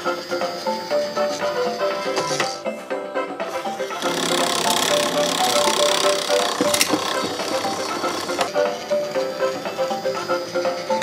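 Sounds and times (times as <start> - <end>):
toy crane motor whirring: 3.5 - 8.6.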